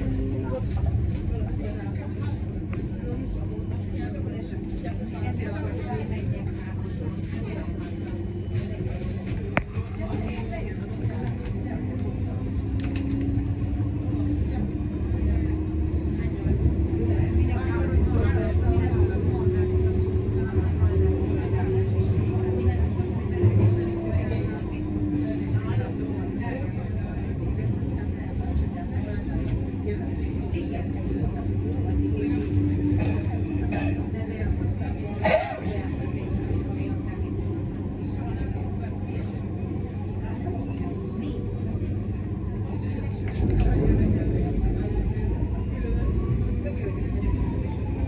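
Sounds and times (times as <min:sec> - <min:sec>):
tram wheels rumbling on rails: 0:00.0 - 0:48.0.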